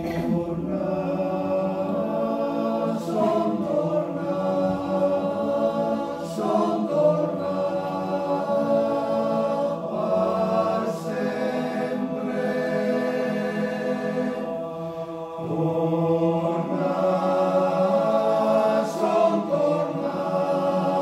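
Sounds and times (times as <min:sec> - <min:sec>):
choir breath: 0:00.0 - 0:21.0
choir singing sustained chords: 0:00.0 - 0:21.0.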